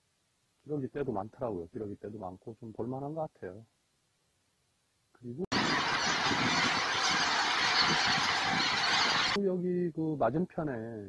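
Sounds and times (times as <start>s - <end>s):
geese honking in flight: 5.5s - 9.4s.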